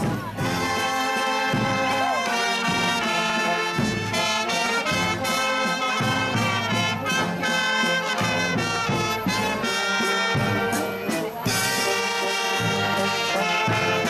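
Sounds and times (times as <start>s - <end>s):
accordion: 0.0s - 14.0s
brass street band playing: 0.0s - 14.0s.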